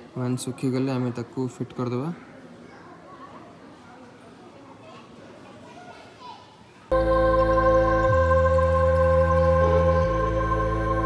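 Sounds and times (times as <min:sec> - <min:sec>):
faint distant voices: 0:00.0 - 0:06.9
organ-like background music: 0:06.9 - 0:11.0.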